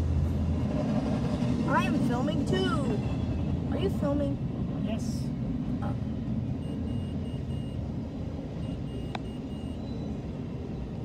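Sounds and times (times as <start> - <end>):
train wheels rumbling on rail: 0.0 - 7.2.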